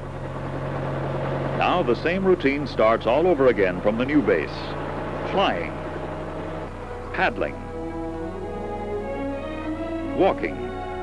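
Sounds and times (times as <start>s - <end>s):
helicopter engine drone: 0.0s - 11.0s.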